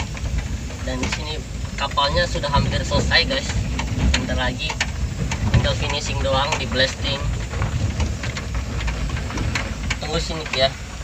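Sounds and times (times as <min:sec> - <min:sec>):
car engine running: 0:00.0 - 0:11.0
low road rumble: 0:00.0 - 0:11.0.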